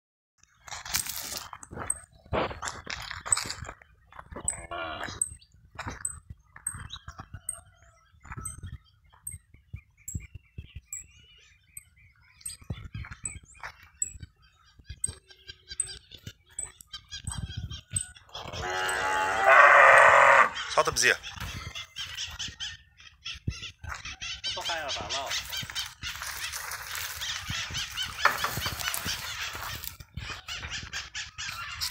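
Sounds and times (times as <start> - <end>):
livestock calling: 4.4 - 5.3, 18.2 - 22.4, 23.9 - 31.9.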